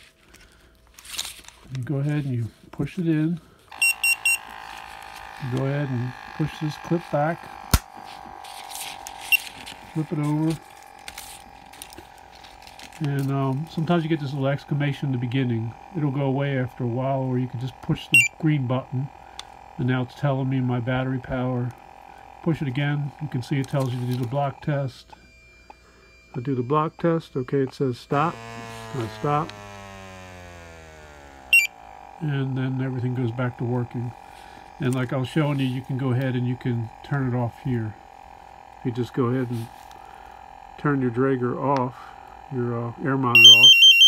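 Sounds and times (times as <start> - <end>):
handling rustle: 0.0 - 2.8
pump electric hum: 0.0 - 44.0
short electronic beep: 43.3 - 44.0.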